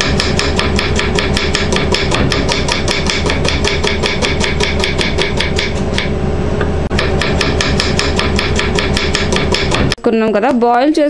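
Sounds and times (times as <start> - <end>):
knife chopping on wooden board: 0.0 - 6.1, 6.9 - 10.0
steady low hum: 0.0 - 11.0.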